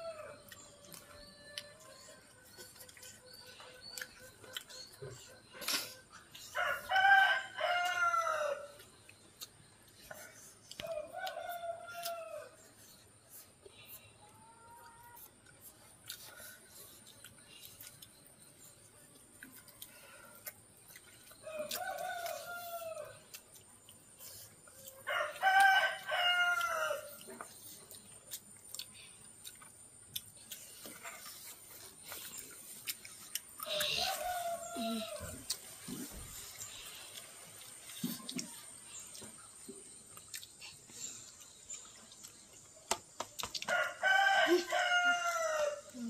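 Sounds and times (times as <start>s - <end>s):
rooster crowing: 6.5s - 8.8s, 21.4s - 23.2s, 24.8s - 27.2s, 33.6s - 35.6s, 43.7s - 46.0s.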